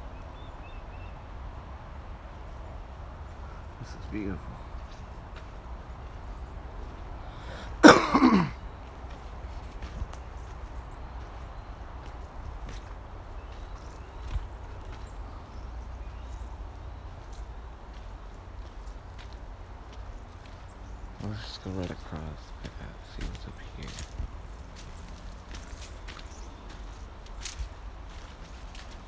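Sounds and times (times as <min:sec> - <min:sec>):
footsteps on dry dirt: 0:02.4 - 0:29.0
person coughing: 0:07.8 - 0:08.6.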